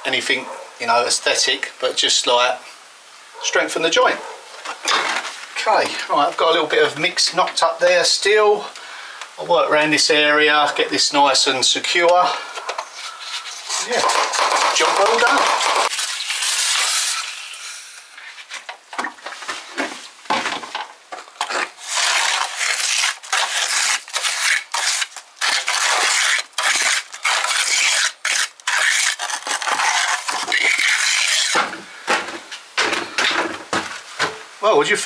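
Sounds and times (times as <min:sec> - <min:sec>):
trowel scraping mortar: 0:12.8 - 0:17.3, 0:21.3 - 0:31.7
spray bottle hissing: 0:15.9 - 0:18.0.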